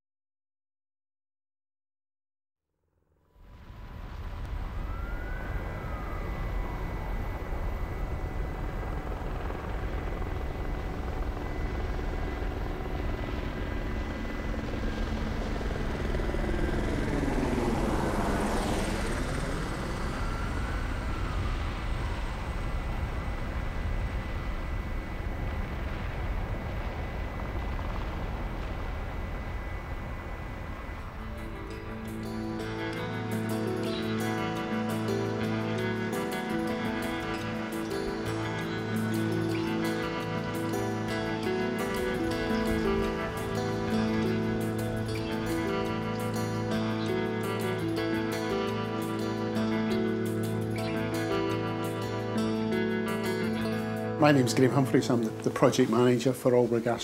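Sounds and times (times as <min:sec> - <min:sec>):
helicopter roaring overhead: 0:03.5 - 0:57.0.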